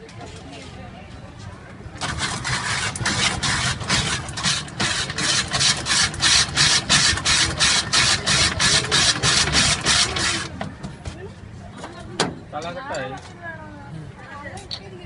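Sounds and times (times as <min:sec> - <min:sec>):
ice-shaving machine rasping: 0:02.0 - 0:10.5.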